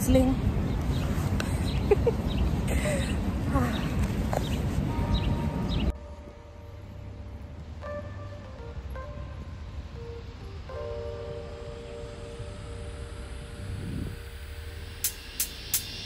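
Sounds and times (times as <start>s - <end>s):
low rumble: 2.2s - 16.0s
soft background music: 4.9s - 15.9s
sharp beat ticks: 15.0s - 16.0s.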